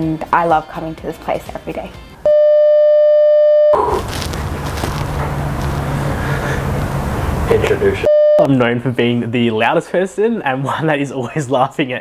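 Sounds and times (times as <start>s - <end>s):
censor bleep: 2.3s - 3.8s, 8.1s - 8.5s.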